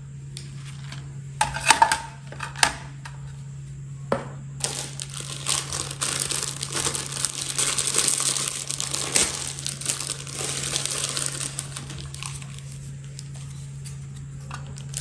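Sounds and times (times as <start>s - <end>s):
plastic bag crinkling: 4.6s - 15.0s.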